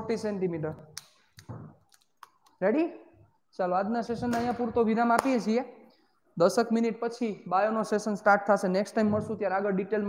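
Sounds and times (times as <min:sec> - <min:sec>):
man's voice: 0:06.4 - 0:10.0.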